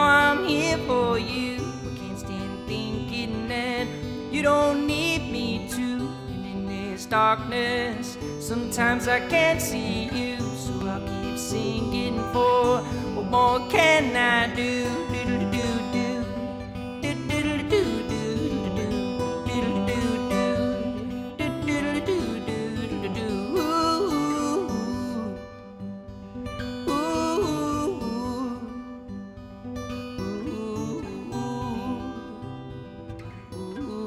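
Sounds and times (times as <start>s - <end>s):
man singing wordlessly: 0.0s - 25.8s, 26.8s - 29.1s, 30.2s - 34.0s
acoustic guitar playing: 0.0s - 34.0s.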